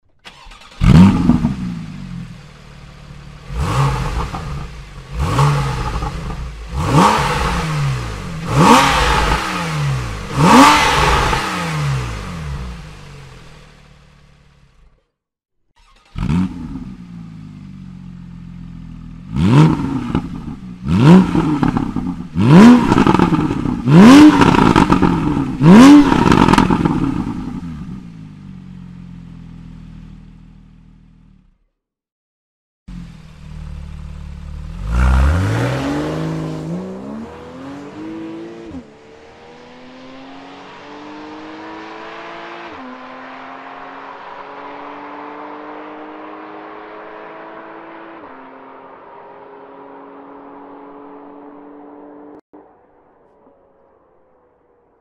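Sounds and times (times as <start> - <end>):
car engine revving and idling: 0.3 - 15.0, 15.8 - 31.6, 32.9 - 52.5.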